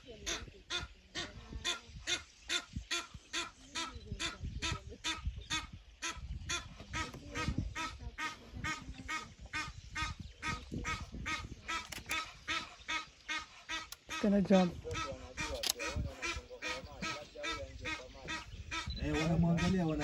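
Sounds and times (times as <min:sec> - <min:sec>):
wild duck calling: 0:00.0 - 0:20.0.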